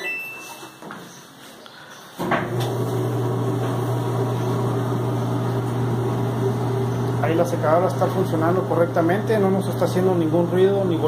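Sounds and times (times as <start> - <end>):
clothes dryer motor humming: 2.2 - 11.0.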